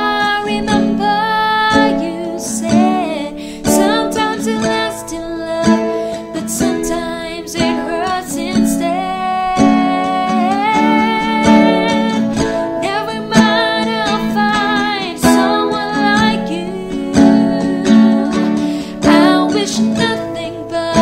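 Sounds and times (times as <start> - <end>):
plucked acoustic guitar: 0.0 - 21.0
woman singing: 0.0 - 21.0.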